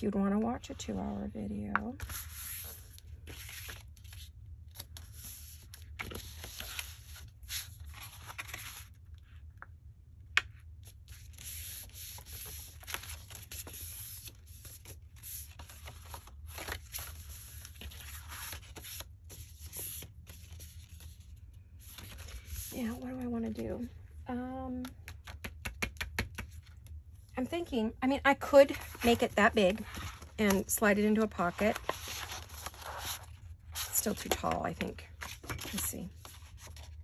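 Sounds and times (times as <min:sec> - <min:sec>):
paper rustling and sliding: 0:02.0 - 0:09.0, 0:28.7 - 0:34.6
low steady hum: 0:26.4 - 0:37.0.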